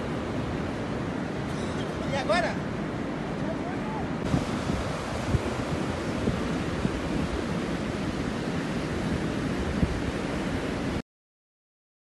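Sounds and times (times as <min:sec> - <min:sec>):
storm surf washing up beach: 0:00.0 - 0:11.0
wind buffeting microphone: 0:04.2 - 0:11.0.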